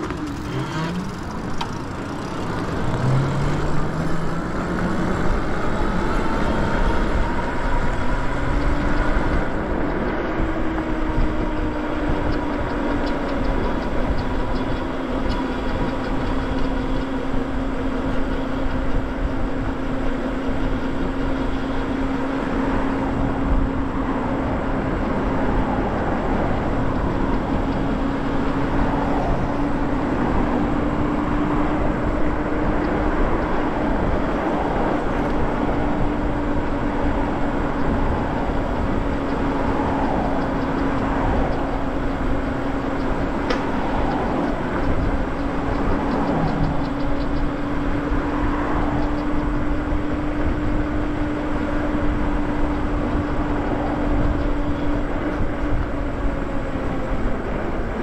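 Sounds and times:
electric bike motor whining: 0.0 - 58.0.

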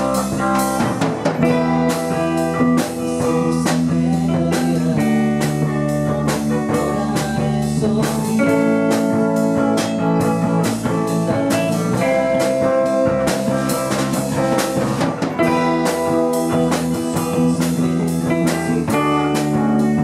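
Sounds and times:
drum kit beat: 0.0 - 20.0
electric guitar chords: 0.0 - 20.0.

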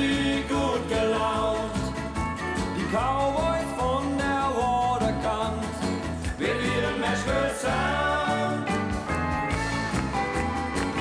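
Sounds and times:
bass and drums: 0.0 - 11.0
electric guitar: 0.0 - 11.0
pedal steel guitar: 8.5 - 11.0.

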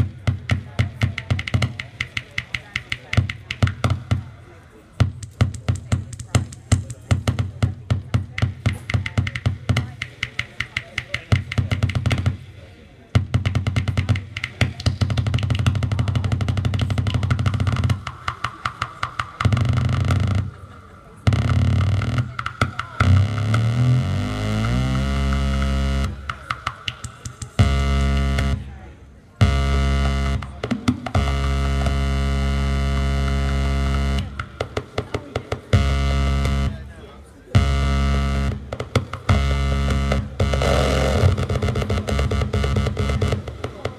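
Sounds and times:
electronic clicking pulses: 13.2 - 28.7, 29.4 - 36.9, 37.6 - 43.9
buzzing low electronic drone: 23.1 - 26.3, 37.6 - 43.5.

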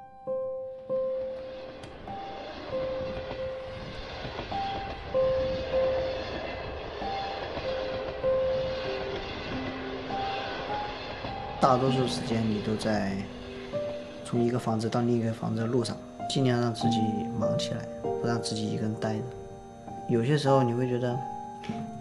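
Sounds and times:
noisy ambience: 0.0 - 22.0
slow piano melody: 0.0 - 22.0.

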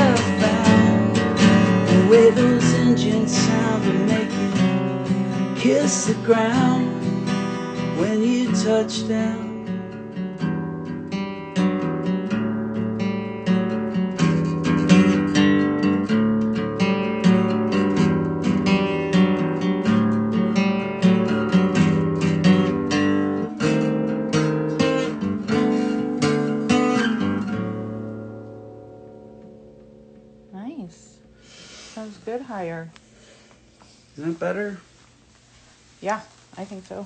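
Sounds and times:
acoustic guitar strumming chords: 0.0 - 33.4.

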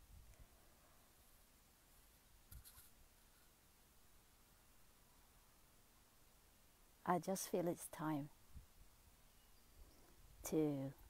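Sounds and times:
soft rustle: 0.0 - 5.4.

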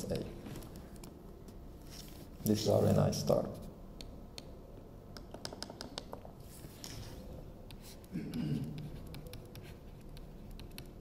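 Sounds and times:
stylus tapping on tablet screen: 5.1 - 6.3.

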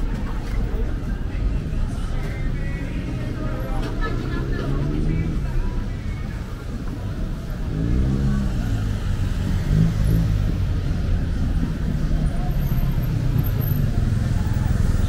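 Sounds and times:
cars driving past: 2.3 - 15.0.

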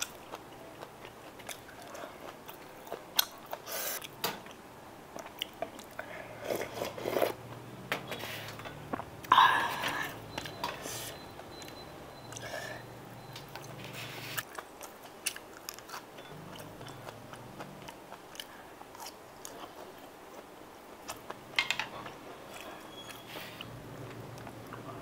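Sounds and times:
chewing and biting: 14.4 - 21.4.

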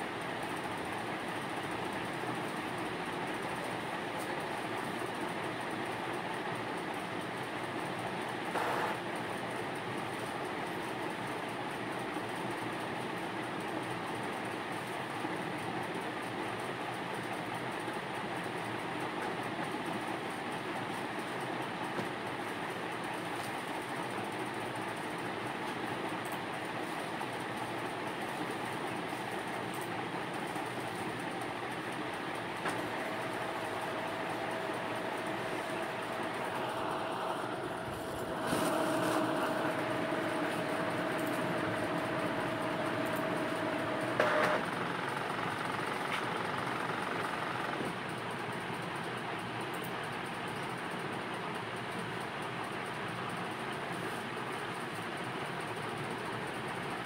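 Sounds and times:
steady rushing noise: 32.9 - 44.2.

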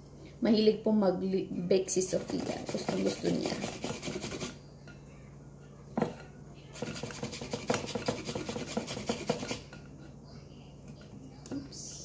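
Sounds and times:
carrot grated on grater: 2.1 - 4.6, 6.8 - 9.7.

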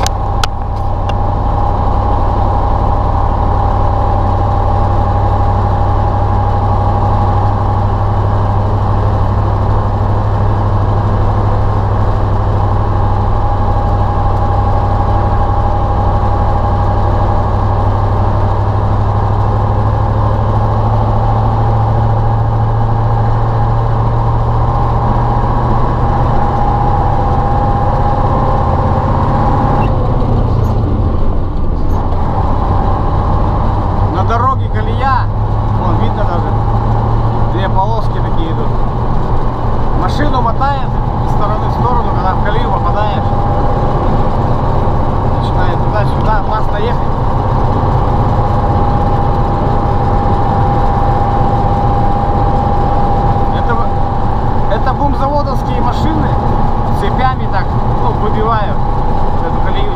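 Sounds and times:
diesel truck engine droning: 0.0 - 59.9
steady whine: 0.0 - 59.9.

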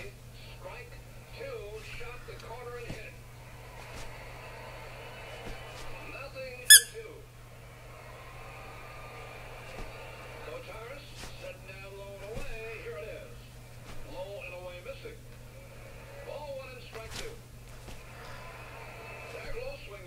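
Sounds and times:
loud high-pitched squeak: 6.7 - 7.0.

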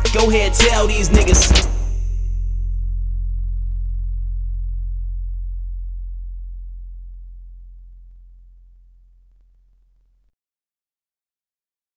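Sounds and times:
deep bass note: 0.0 - 10.2.

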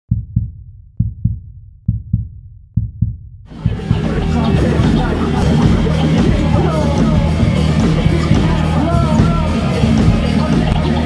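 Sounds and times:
deep heartbeat-like thumps: 0.1 - 11.0
loud full music: 3.5 - 11.0.

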